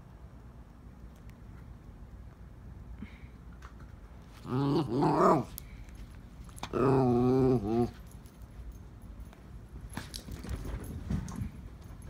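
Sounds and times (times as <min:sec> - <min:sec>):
dog whining: 0:06.7 - 0:07.9.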